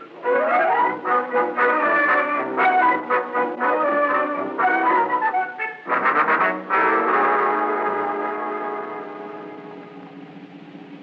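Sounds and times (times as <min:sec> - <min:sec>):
orchestral brass bridge music: 0:00.0 - 0:10.6.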